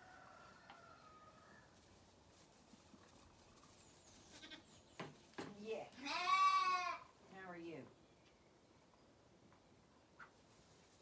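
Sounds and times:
lambs bleating: 0:04.4 - 0:04.6, 0:06.0 - 0:07.1.

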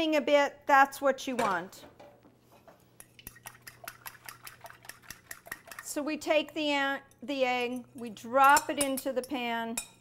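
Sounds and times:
utensil clicking against bowl: 0:03.0 - 0:06.0
eggs being beaten in a bowl: 0:03.0 - 0:09.4.

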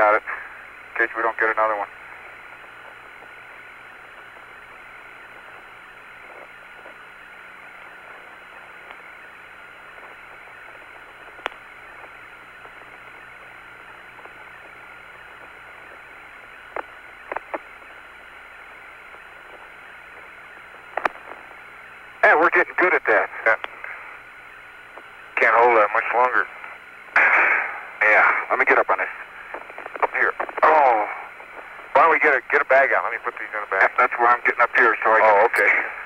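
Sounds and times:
faint hum: 0:00.0 - 0:36.0
radio static hiss: 0:00.0 - 0:36.0.

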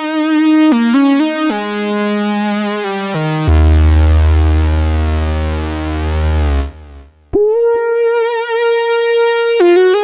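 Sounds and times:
deep buzzy synthesizer note: 0:03.2 - 0:10.0.

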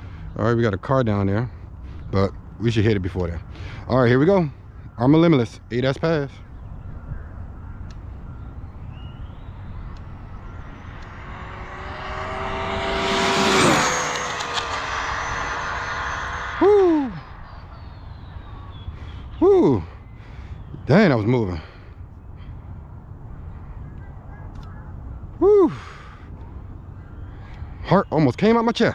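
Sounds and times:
rc car electric motor whine: 0:10.1 - 0:17.6.

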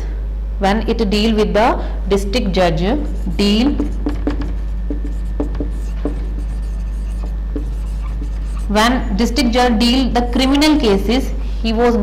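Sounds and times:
steady low hum: 0:00.0 - 0:12.0
marker pen writing on whiteboard: 0:03.0 - 0:10.9
marker tip tapping: 0:03.1 - 0:08.7.

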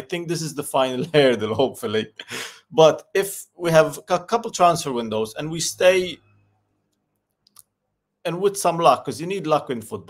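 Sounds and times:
man speaking: 0:00.0 - 0:06.2, 0:08.2 - 0:10.0.

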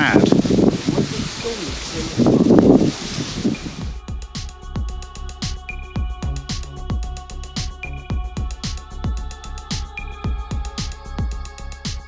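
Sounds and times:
wind buffeting microphone: 0:00.0 - 0:04.0
electronic music with steady beat: 0:03.4 - 0:12.0.

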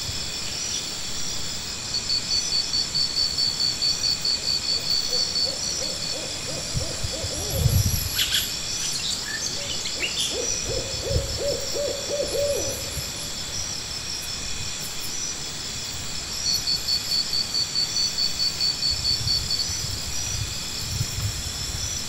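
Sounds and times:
insect chirping and buzzing: 0:00.0 - 0:22.0.

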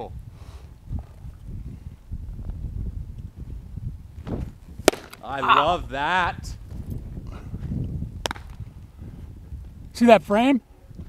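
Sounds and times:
baseball popping into mitt: 0:04.2 - 0:05.3, 0:08.2 - 0:08.6.

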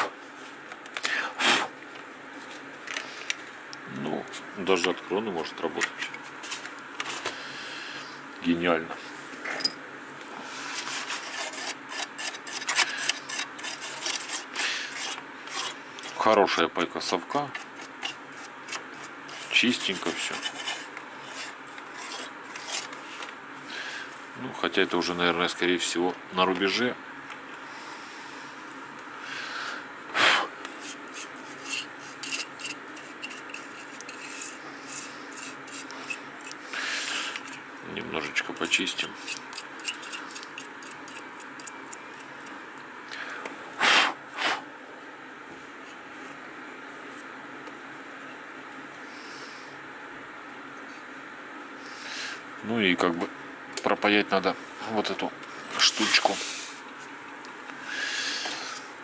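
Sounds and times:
toothbrush scrubbing circuit board: 0:11.0 - 0:15.8, 0:17.8 - 0:22.9, 0:30.8 - 0:37.6, 0:38.4 - 0:42.5.

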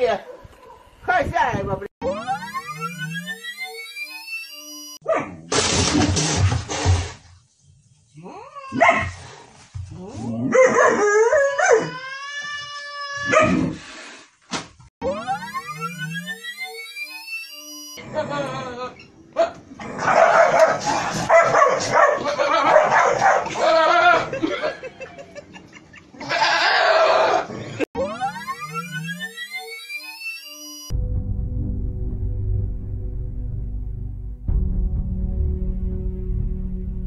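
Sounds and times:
synthetic rising pitch sweep: 0:02.0 - 0:05.0, 0:15.0 - 0:18.0, 0:28.0 - 0:31.0
dog barking and yelping: 0:05.0 - 0:05.4, 0:08.6 - 0:09.2, 0:10.4 - 0:12.0, 0:13.2 - 0:13.7, 0:19.4 - 0:24.4.

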